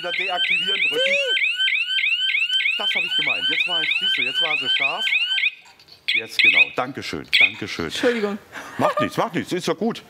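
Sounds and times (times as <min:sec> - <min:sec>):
person speaking: 0:00.0 - 0:01.4, 0:02.8 - 0:05.1, 0:06.1 - 0:10.0
alarm siren whooping: 0:00.0 - 0:06.8.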